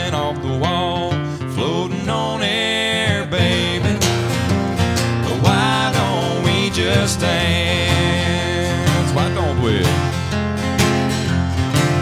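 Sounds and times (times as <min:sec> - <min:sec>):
sliding guitar lead melody: 0:00.0 - 0:12.0
strummed acoustic guitar chords: 0:00.0 - 0:12.0.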